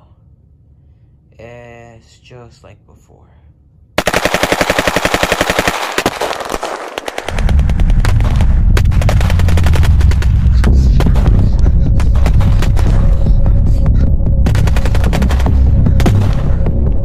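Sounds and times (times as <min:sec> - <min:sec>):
automatic gunfire: 0:04.0 - 0:13.0, 0:14.5 - 0:16.4
loud deep rumble: 0:07.3 - 0:17.0.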